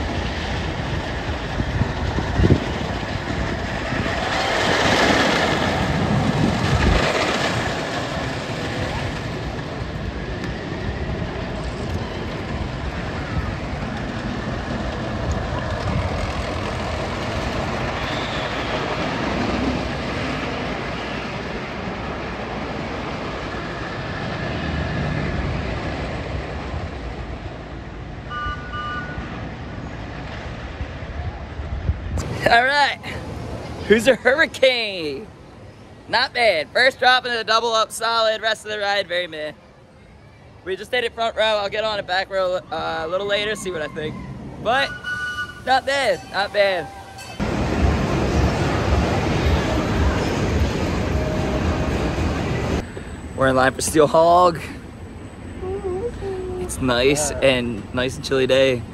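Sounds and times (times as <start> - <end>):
roller coaster rumbling on track: 0.0 - 58.9
people's voices: 55.6 - 58.8.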